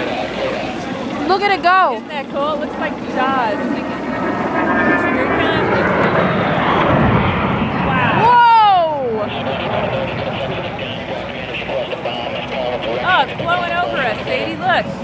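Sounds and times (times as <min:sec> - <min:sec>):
engine whine dropping in pitch: 0:00.0 - 0:15.0
jet passing: 0:00.0 - 0:15.0.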